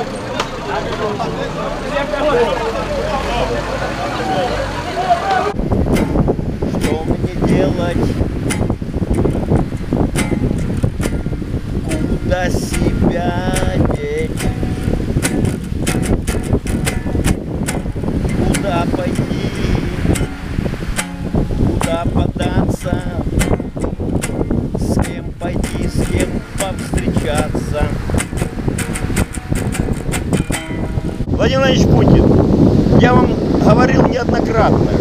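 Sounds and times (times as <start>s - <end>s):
man's voice: 0.5s - 5.6s, 6.7s - 8.2s, 11.8s - 14.4s, 18.4s - 20.2s, 21.8s - 23.4s, 24.8s - 28.2s, 31.3s - 35.0s
acoustic guitar strumming: 4.6s - 31.3s
wind rumble on microphone: 5.5s - 35.0s.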